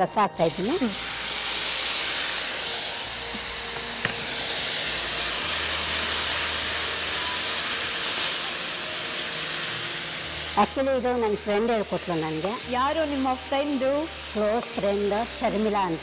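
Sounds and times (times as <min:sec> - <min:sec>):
oil sizzling in a frying pan: 0:00.0 - 0:16.0
steam hissing: 0:00.0 - 0:16.0.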